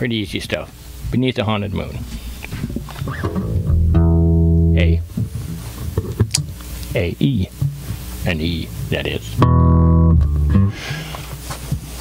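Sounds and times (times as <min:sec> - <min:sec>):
electric bass notes: 0:00.9 - 0:11.8
quiet plucked bass notes: 0:02.6 - 0:10.8
fingers clicking on strings: 0:03.0 - 0:04.6.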